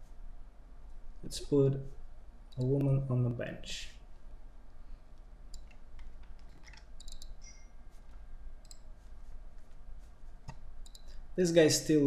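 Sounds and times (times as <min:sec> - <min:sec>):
low steady hum: 0:00.0 - 0:12.0
computer mouse clicking: 0:05.2 - 0:08.9, 0:10.4 - 0:11.2.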